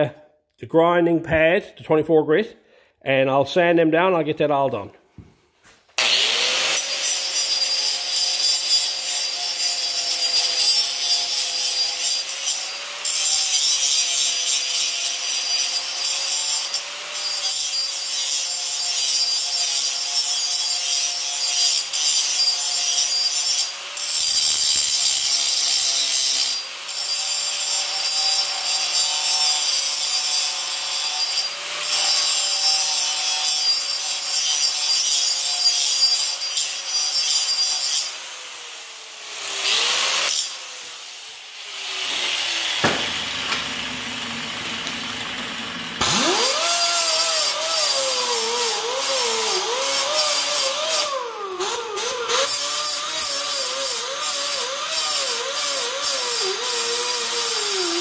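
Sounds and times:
angle grinder grinding steel: 6.0s - 58.0s
angle grinder sanding metal: 6.0s - 58.0s
knock: 42.8s - 43.2s.

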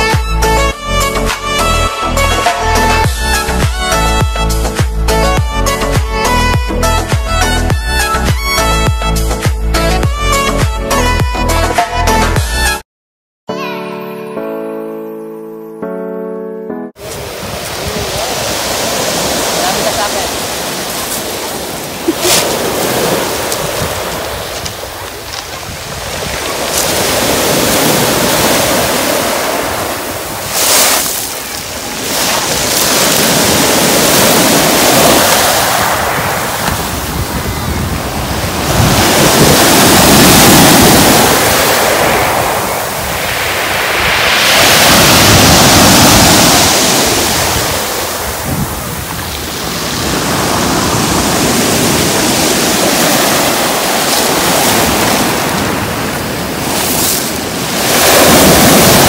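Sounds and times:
surf washing up pebble beach: 17.0s - 59.0s.

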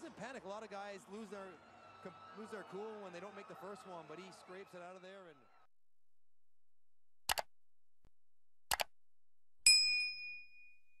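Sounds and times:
bright bell ding: 9.7s - 11.0s.

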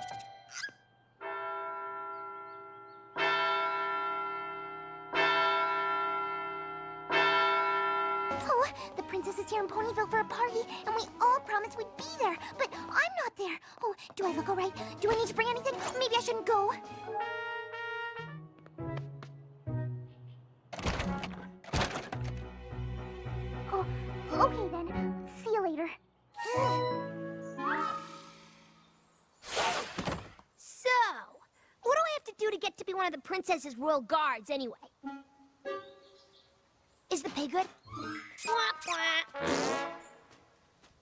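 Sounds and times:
clock-tower bell tolling: 1.2s - 8.5s
background music: 6.4s - 13.5s, 14.2s - 29.1s, 34.9s - 36.5s.

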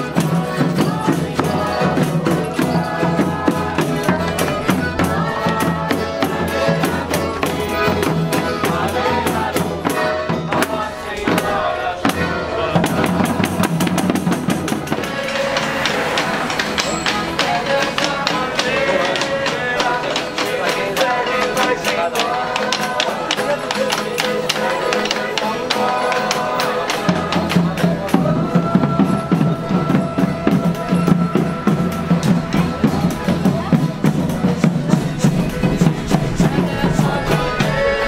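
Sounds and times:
hand-beaten drum: 0.0s - 38.0s.

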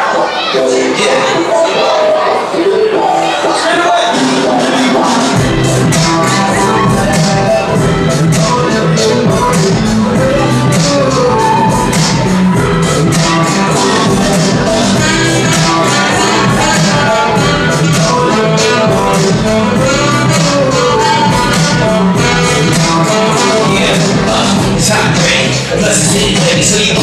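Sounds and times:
keyboards: 0.0s - 27.0s
saxophone melody: 1.4s - 27.0s
steady drum beat: 5.0s - 27.0s.

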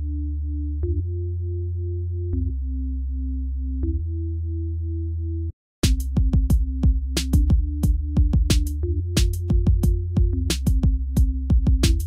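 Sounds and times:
deep sustained synth bass: 0.0s - 5.5s, 6.1s - 12.0s.

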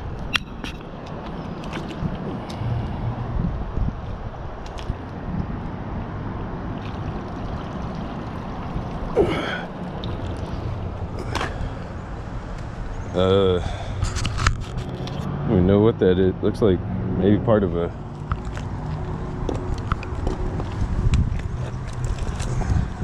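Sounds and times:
gasping breath: 9.2s - 9.7s.

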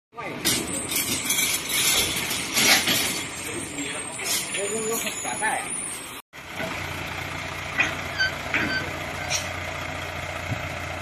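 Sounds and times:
metal bed frames clanking: 0.5s - 3.4s.

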